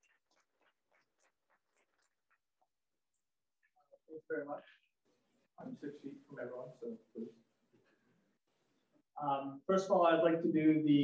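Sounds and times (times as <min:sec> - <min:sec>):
scattered hand claps: 0:00.0 - 0:02.7.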